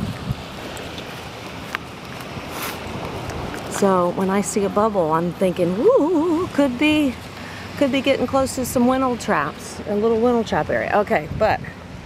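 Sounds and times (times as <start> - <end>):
gentle surf: 0.0 - 12.0
wind: 0.0 - 12.0.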